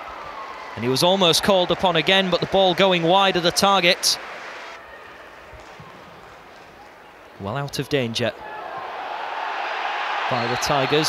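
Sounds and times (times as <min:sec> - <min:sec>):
stadium ambience hiss: 0:00.0 - 0:11.0.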